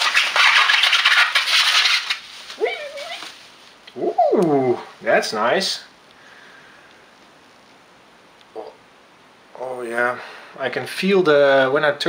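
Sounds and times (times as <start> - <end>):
bubble wrap crinkling: 0.0 - 3.9.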